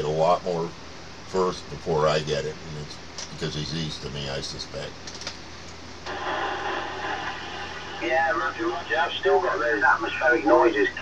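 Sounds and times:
radio static rush: 0:06.0 - 0:11.0.

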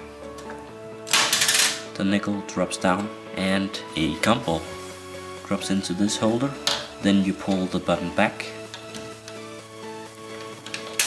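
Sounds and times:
background music: 0:00.0 - 0:11.0
plastic parts clattering: 0:01.1 - 0:01.9.

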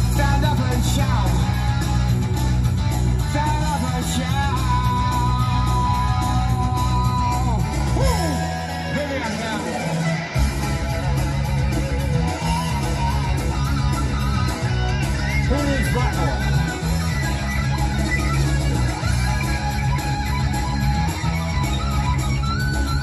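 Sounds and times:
electric lead guitar bent notes: 0:00.0 - 0:23.0
heavy metal band playing: 0:00.0 - 0:23.0.

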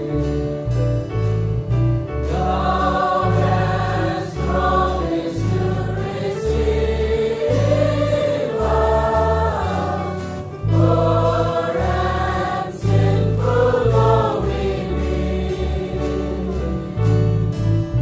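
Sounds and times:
instrumental accompaniment: 0:00.0 - 0:18.0
steady bass line: 0:00.0 - 0:18.0
choir singing gospel music: 0:02.1 - 0:17.7.

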